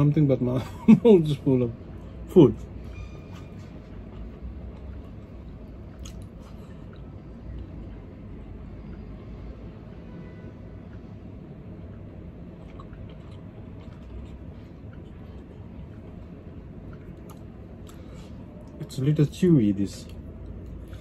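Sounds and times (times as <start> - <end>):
steady low hum: 0.0 - 21.0
person chewing food: 3.3 - 9.2, 10.8 - 18.8, 19.9 - 21.0.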